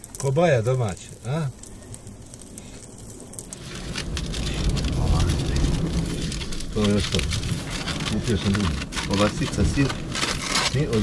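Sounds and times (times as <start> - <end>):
low rumbling noise: 0.0 - 11.0
wood embers crackling: 0.0 - 11.0.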